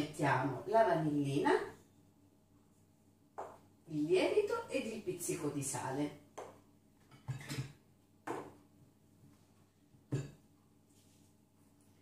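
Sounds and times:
bowls knocking on a table: 0:10.1 - 0:10.4.

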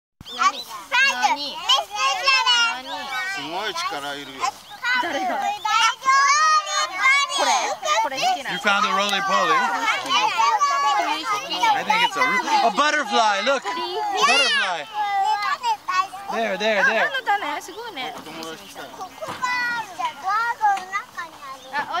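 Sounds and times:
young children chattering: 0:00.2 - 0:22.0.

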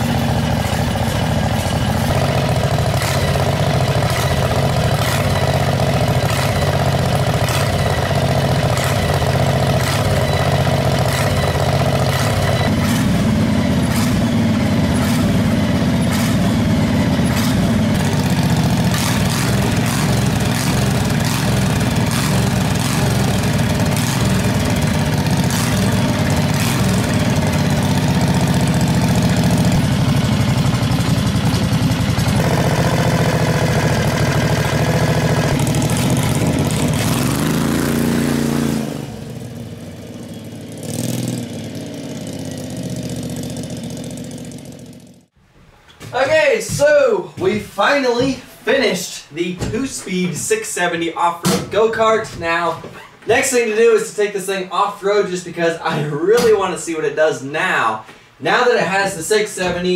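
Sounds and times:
go-kart engine idling: 0:00.0 - 0:45.4.

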